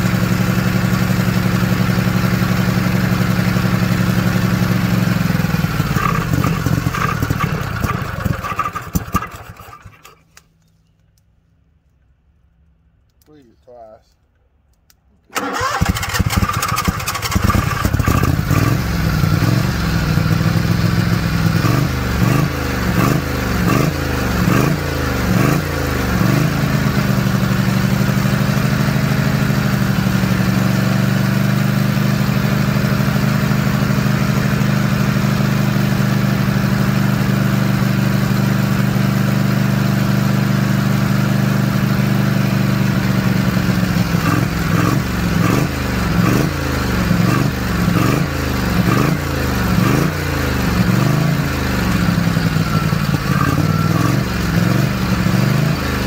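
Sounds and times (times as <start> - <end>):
small engine revving: 0.8 - 10.2, 15.4 - 36.6, 41.9 - 56.0.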